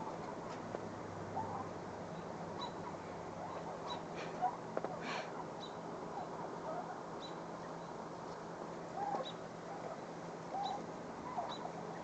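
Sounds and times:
low steady hum: 0:00.0 - 0:12.0
lower bird calls: 0:01.3 - 0:08.0, 0:08.9 - 0:12.0.

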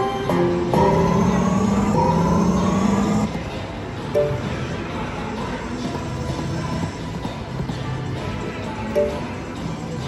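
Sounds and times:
low electronic drone: 0:00.0 - 0:04.9
rising synthesized tone: 0:00.7 - 0:03.3.

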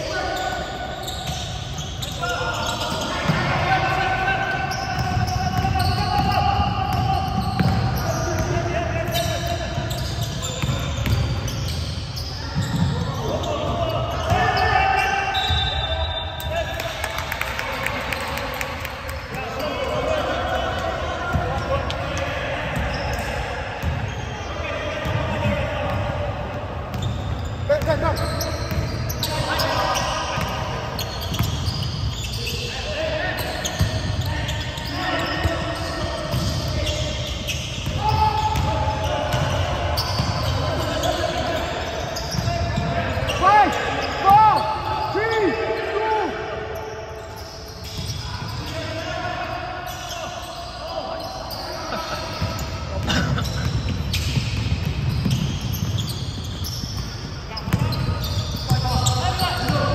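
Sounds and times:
players calling out: 0:00.0 - 0:59.9
sneakers squeaking: 0:00.0 - 0:59.9
basketball bouncing on floor: 0:05.0 - 0:08.5.

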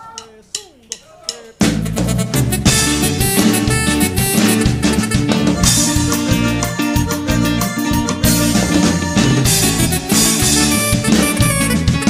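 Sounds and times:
live band playing: 0:01.4 - 0:12.0.

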